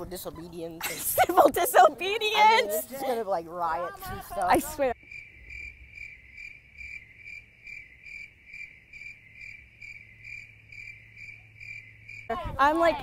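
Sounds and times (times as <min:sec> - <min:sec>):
cricket chirping: 0:04.4 - 0:13.0.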